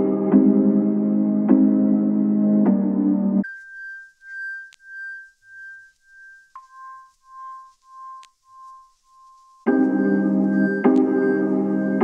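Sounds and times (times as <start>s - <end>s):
soft pulsing electronic tone: 3.4s - 12.0s.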